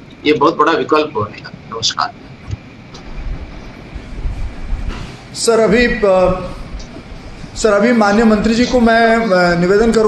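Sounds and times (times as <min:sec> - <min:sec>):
microphone handling noise: 0:01.2 - 0:07.6.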